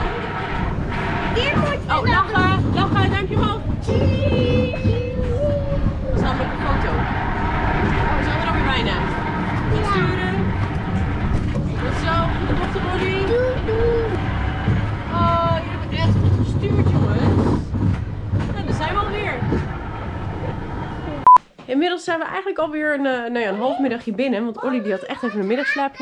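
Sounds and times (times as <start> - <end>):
chatter: 0.0 - 17.8, 22.8 - 26.0
ride car rumbling: 0.0 - 21.4
children's voices: 1.3 - 7.0, 9.6 - 10.6, 11.8 - 14.5, 23.4 - 26.0.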